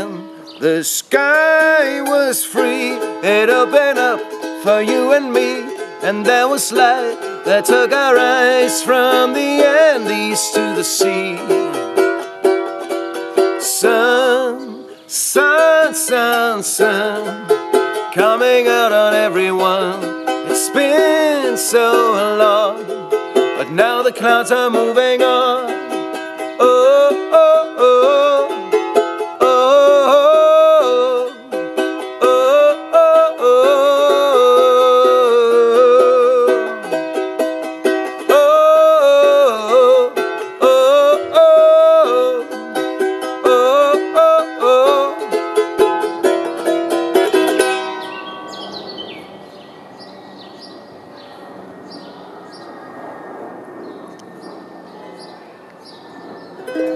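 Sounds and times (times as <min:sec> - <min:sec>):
charango strumming: 0:00.0 - 0:49.6, 0:56.6 - 0:56.9.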